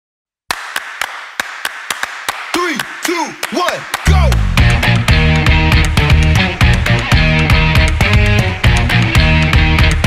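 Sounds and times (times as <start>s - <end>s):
hand claps: 0.5s - 10.0s.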